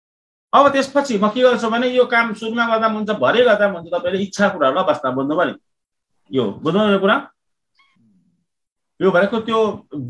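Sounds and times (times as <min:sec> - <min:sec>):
man speaking: 0:00.6 - 0:05.6, 0:06.3 - 0:07.4, 0:09.0 - 0:10.0.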